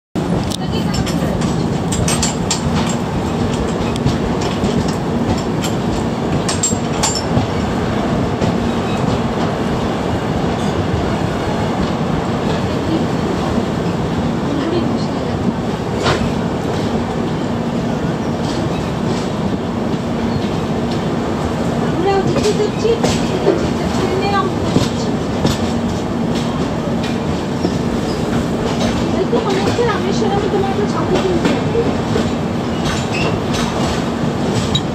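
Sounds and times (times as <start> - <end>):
train wheels rumbling on rails: 0.2 - 34.9.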